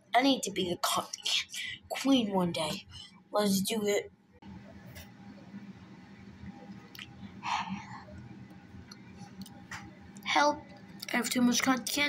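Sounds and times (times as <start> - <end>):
wet chewing and mouth sounds: 6.7 - 7.2.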